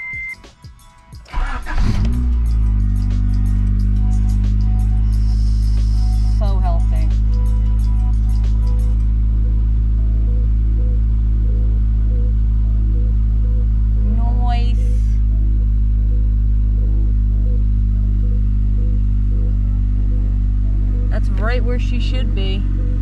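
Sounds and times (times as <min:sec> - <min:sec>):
car engine idling: 0:00.0 - 0:23.0.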